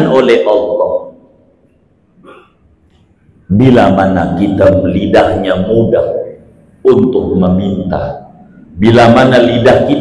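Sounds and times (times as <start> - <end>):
man clearing throat: 2.2 - 2.6.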